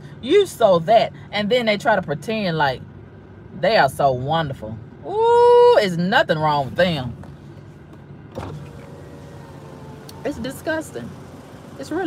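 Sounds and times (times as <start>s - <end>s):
car engine idling: 0.0s - 12.0s
electric window motor whine: 8.3s - 11.8s.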